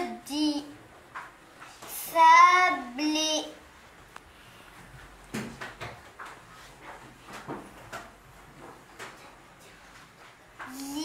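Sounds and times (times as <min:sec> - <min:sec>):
soft knocks and clatters: 0:04.8 - 0:10.8.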